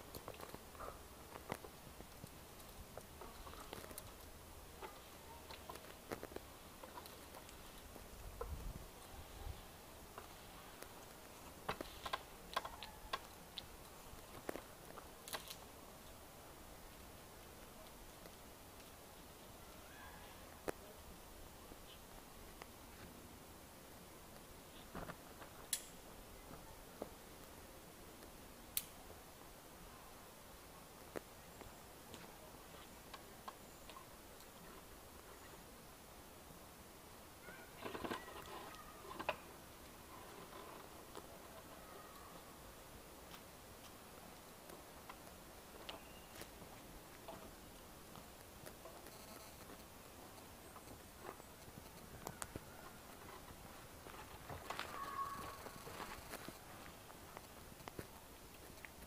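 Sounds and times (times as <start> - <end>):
faint background hiss: 0.0 - 59.0.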